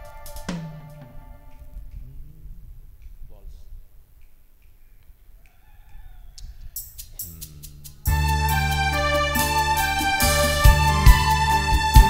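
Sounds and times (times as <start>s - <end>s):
electronic keyboard rhythm ticks: 0.0s - 2.1s.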